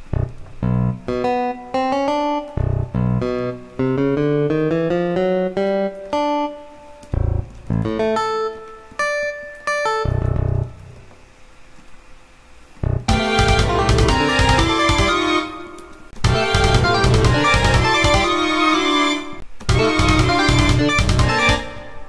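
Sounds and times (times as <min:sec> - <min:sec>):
sampled plucked-string notes: 0:00.0 - 0:11.0, 0:12.8 - 0:22.0.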